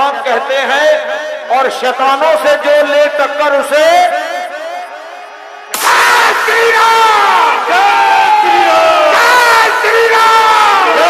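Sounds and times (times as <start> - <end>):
crowd war cry: 4.4 - 11.0.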